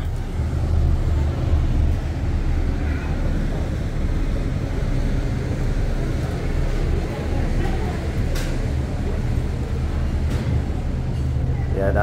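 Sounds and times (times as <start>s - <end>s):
boat engines droning: 0.0s - 12.0s.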